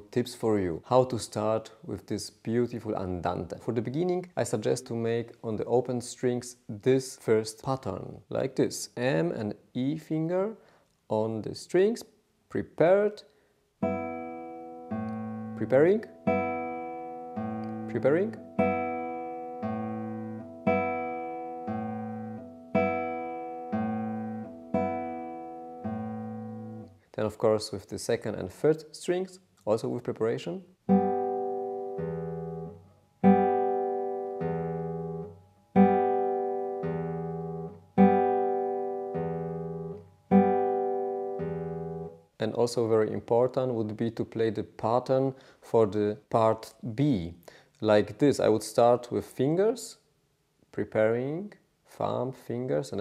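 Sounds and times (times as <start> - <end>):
nylon-string guitar plucked: 13.8 - 27.0, 30.8 - 42.2.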